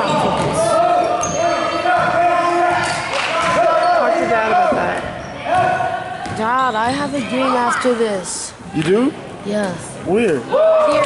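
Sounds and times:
spectator voices and chatter: 0.0 - 11.0.

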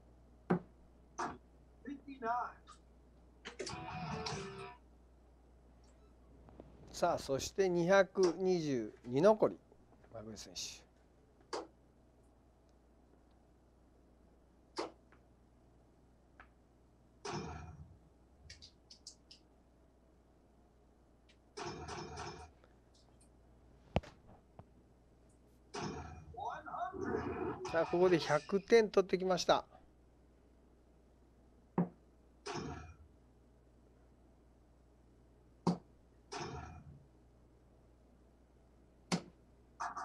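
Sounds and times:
faint room noise: 0.0 - 40.0
dart hitting electronic dartboard: 14.8 - 15.0, 39.1 - 39.4.

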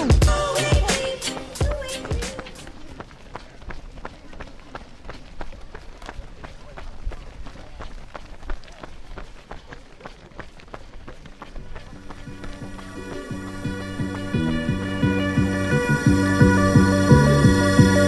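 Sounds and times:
music with steady beat: 0.0 - 2.7, 11.8 - 18.0
running footsteps on asphalt: 0.0 - 16.3.

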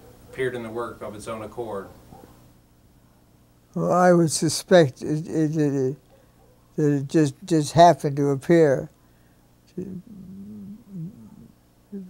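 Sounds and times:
man humming hesitantly: 9.7 - 12.0.

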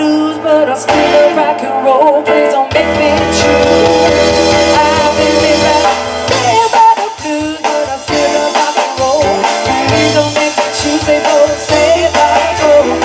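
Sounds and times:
bass guitar: 0.0 - 13.0
drums: 0.0 - 13.0
electric guitar: 0.0 - 13.0
keyboard: 0.0 - 13.0.

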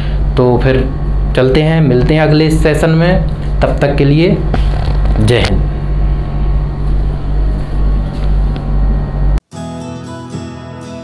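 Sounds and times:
low room hum and rumble: 0.0 - 9.4.

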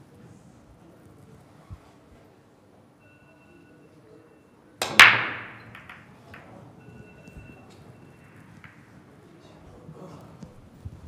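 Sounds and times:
cue tip clicking on ball: 4.8 - 6.5
billiard balls clicking: 4.8 - 6.8, 8.2 - 9.1
cue ball cracking into racked balls: 4.8 - 6.8, 8.2 - 9.1.

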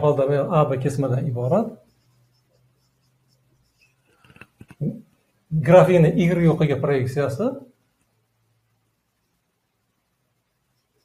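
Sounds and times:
low steady hum: 0.0 - 11.0
marker writing on whiteboard: 0.7 - 5.3, 10.4 - 11.0.

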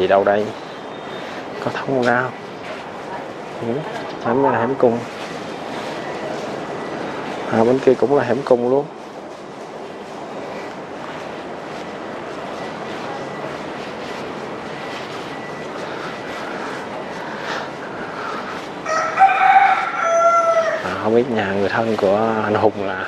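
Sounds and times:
rooster crowing: 18.8 - 21.1.

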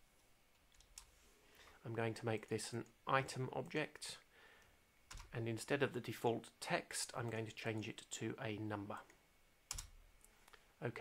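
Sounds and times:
keyboard and mouse clicks: 9.7 - 10.0.

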